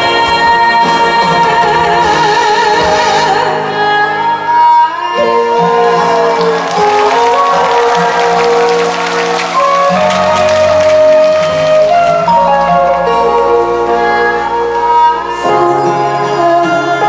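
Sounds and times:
audience applause: 5.7 - 13.0.

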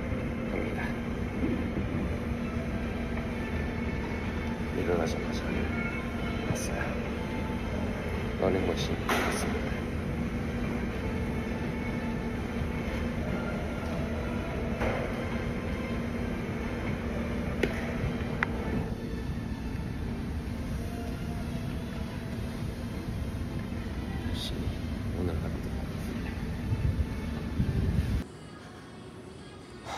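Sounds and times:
treadmill motor hum and belt rumble: 0.0 - 28.3.

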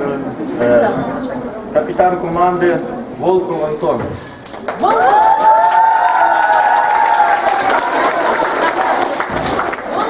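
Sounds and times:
audience clapping: 4.4 - 10.0.

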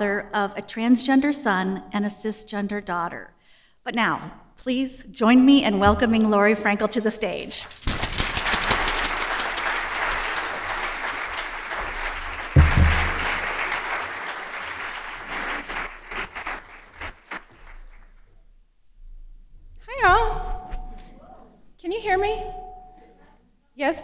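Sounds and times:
low thump: 5.8 - 6.3
audience applauding: 7.7 - 18.2.

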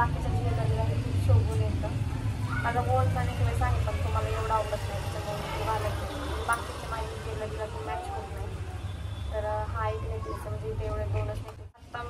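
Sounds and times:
woman speaking: 0.0 - 8.6, 9.4 - 12.0.

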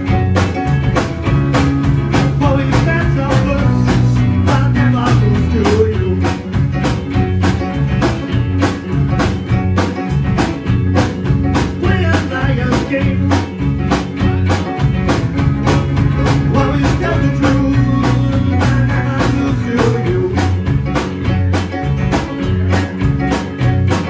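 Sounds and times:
bass guitar: 0.0 - 24.0
drum kit steady beat: 0.0 - 24.0
electric guitar: 0.0 - 24.0
keyboard: 0.0 - 24.0.

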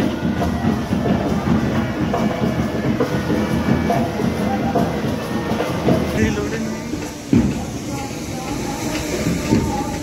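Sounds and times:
procession music with drums: 0.0 - 10.0.

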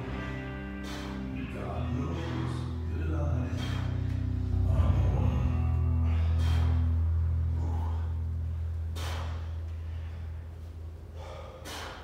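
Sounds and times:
low steady hum: 0.0 - 12.0
man huffing with exertion: 11.2 - 12.0.

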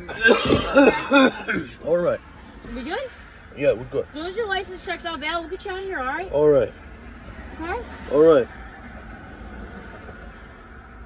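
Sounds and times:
passing traffic rumble: 0.0 - 11.0
wind: 0.0 - 11.0.

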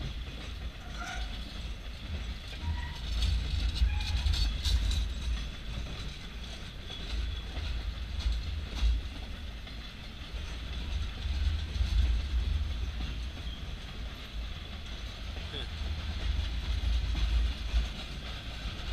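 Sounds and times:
freight train rumble and wheel clatter: 0.0 - 18.9.

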